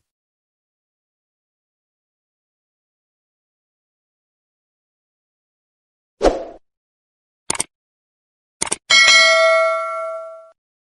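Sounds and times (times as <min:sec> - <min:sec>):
quick click: 0:07.5 - 0:07.7, 0:08.6 - 0:08.8
notification bell ding: 0:08.9 - 0:10.6.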